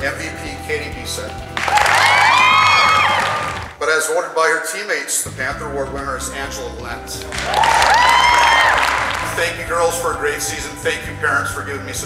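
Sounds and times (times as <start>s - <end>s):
audience applauding: 1.5s - 3.8s, 7.3s - 9.5s
high-pitched cheer: 1.6s - 3.8s, 7.3s - 9.4s.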